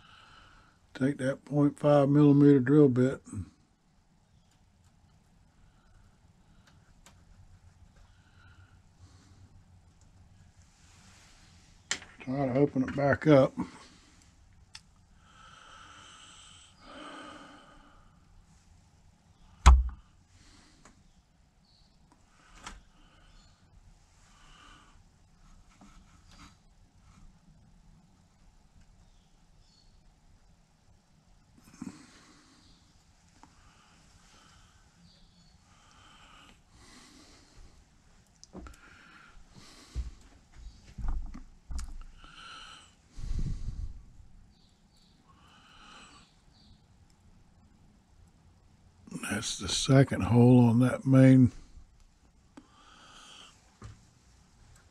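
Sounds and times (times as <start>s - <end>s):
person breathing close to microphone: 15.2s - 18.3s, 38.6s - 40.8s, 41.9s - 44.3s, 52.6s - 53.8s
dull bumps: 19.6s - 20.0s
sharp loud knock: 19.6s - 20.0s.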